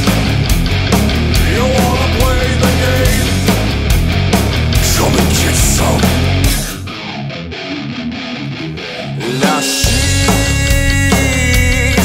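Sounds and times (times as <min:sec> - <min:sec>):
electric guitar riff: 0:00.0 - 0:12.0.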